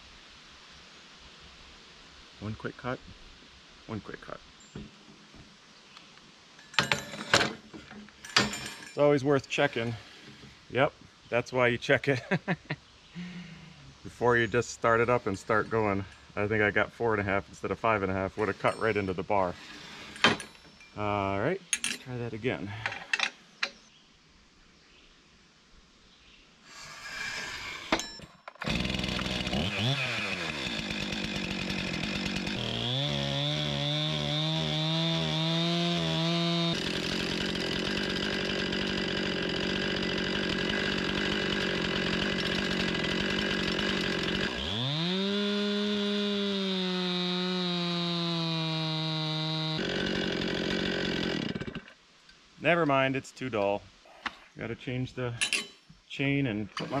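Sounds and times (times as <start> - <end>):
chainsaw cutting a log: 28.6 - 52.0.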